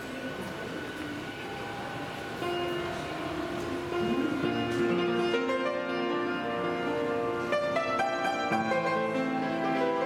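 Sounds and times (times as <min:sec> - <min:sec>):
train rumble and hum: 0:00.0 - 0:05.8.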